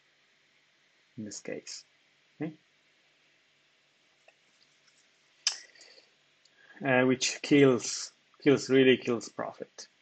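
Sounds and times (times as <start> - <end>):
man saying uh: 6.8 - 9.8.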